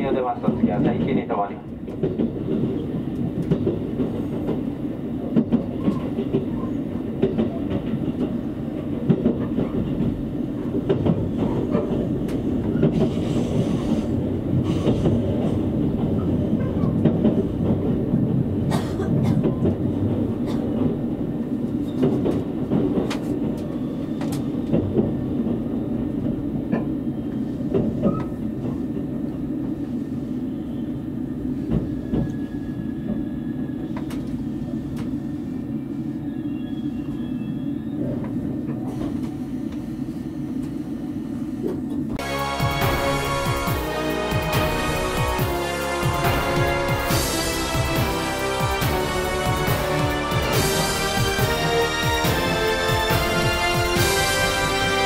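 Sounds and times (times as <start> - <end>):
rail joint clicks and knocks: 0.0 - 13.8, 14.5 - 27.0, 27.7 - 28.8
train wheels rumbling on rail: 0.0 - 55.0.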